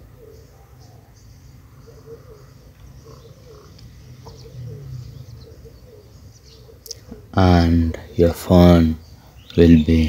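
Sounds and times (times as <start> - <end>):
low steady hum: 0.0 - 10.0
animal chirps: 1.7 - 7.2.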